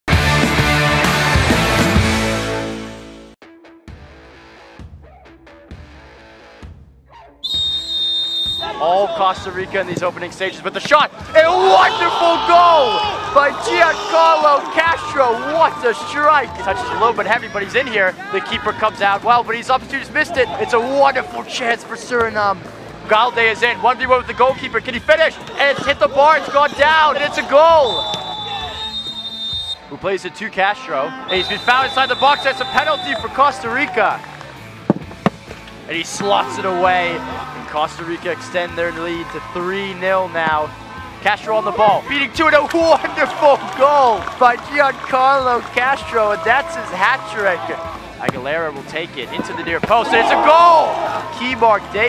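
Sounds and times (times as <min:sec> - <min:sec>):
referee's whistle blast: 0:07.4 - 0:08.8, 0:27.7 - 0:29.9, 0:31.2 - 0:33.5
commentary speech: 0:35.9 - 0:52.0.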